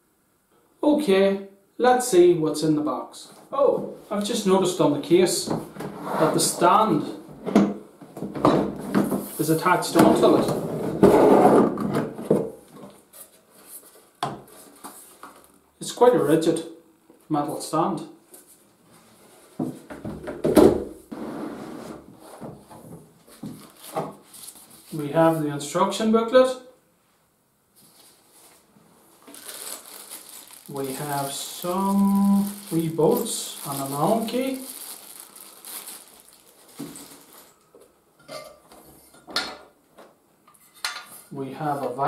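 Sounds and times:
rustling: 0:21.2 - 0:25.1, 0:27.7 - 0:37.9.

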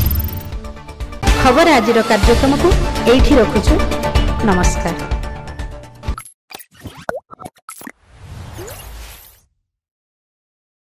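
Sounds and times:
pops and blips: 0:06.2 - 0:08.9.

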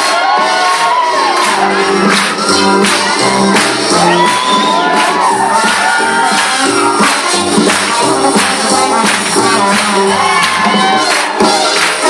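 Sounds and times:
crowd cheering and whooping: 0:00.0 - 0:07.4, 0:09.5 - 0:12.0
swing music: 0:00.0 - 0:12.0.

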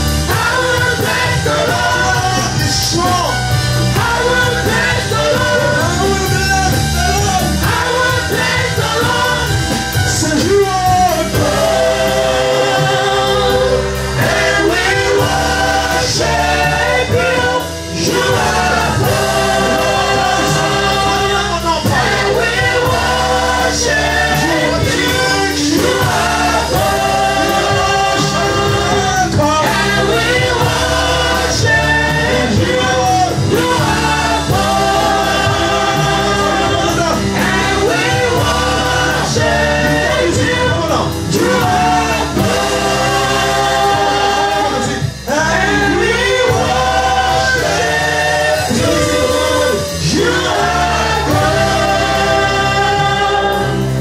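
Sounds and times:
gospel choir singing with band: 0:00.0 - 0:54.0.

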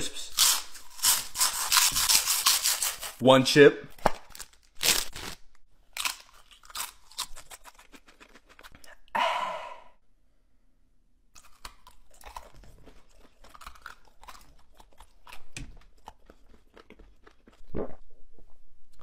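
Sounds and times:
person crunching a chip: 0:00.2 - 0:03.2, 0:04.3 - 0:09.1, 0:11.3 - 0:17.7.

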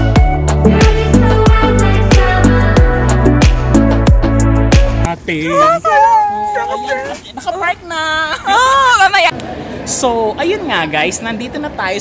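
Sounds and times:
person calling high and drawn-out: 0:05.4 - 0:07.2.

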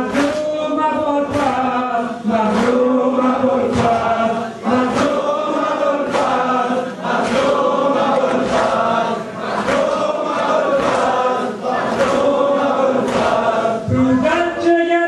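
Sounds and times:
rhythmic slap: 0:00.0 - 0:14.8
men chanting in unison: 0:00.0 - 0:15.0.

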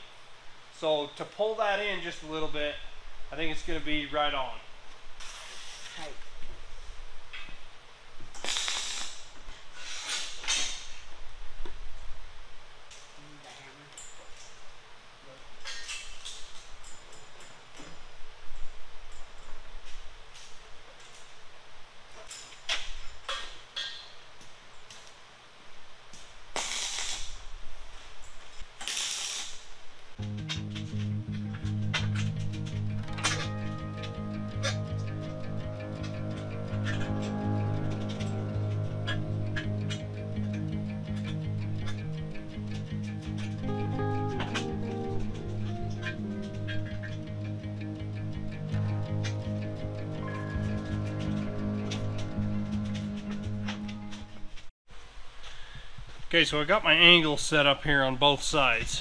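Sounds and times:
welder bursts: 0:08.4 - 0:10.8, 0:26.5 - 0:27.4, 0:28.8 - 0:29.7
background music with guitar: 0:30.2 - 0:54.6.

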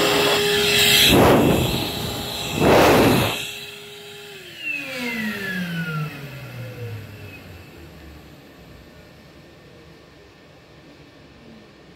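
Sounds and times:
hand dryer air blast stopping: 0:00.0 - 0:03.6
motor whine winding down: 0:00.0 - 0:09.2.

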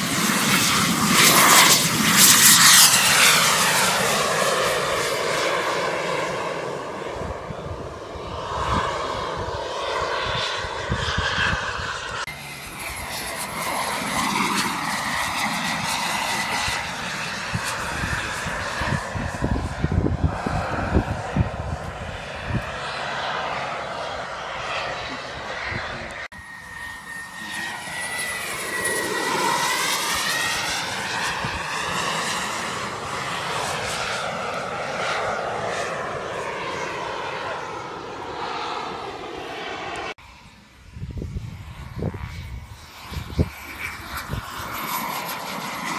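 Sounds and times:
model jet engines whining: 0:00.0 - 0:45.9.

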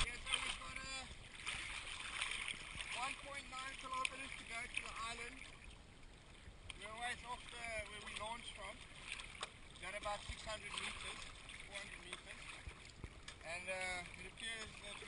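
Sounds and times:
small waves lapping: 0:00.0 - 0:15.0.

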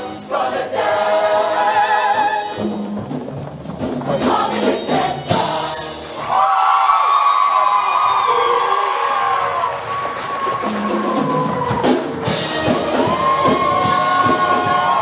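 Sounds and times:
choir singing: 0:00.0 - 0:02.6, 0:04.1 - 0:06.3, 0:13.0 - 0:15.0
band accompaniment: 0:00.0 - 0:06.4, 0:08.2 - 0:15.0.

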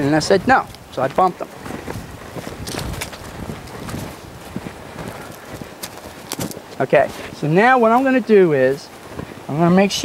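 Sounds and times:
horse footsteps on grass: 0:00.0 - 0:10.0.

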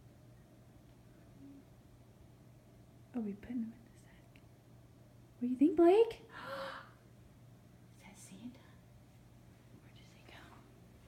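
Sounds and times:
faint whispering: 0:03.5 - 0:04.4, 0:07.9 - 0:08.9, 0:09.8 - 0:10.8.

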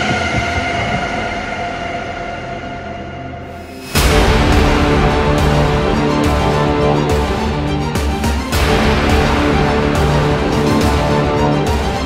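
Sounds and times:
dramatic sound effect hit: 0:00.0 - 0:07.6.

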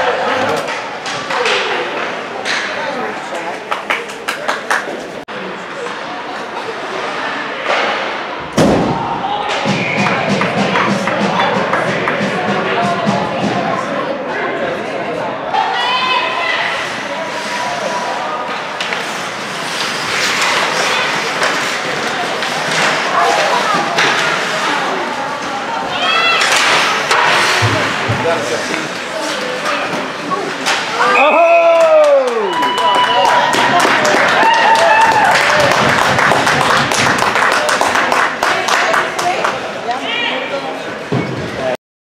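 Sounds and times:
spectators' voices: 0:00.0 - 0:41.8
skates scraping ice: 0:16.4 - 0:31.3
loud shout: 0:31.0 - 0:35.9.

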